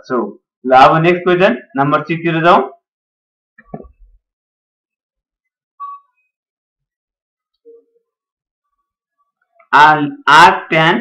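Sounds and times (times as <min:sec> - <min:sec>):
short high-pitched whistle tone: 0:05.8 - 0:06.3.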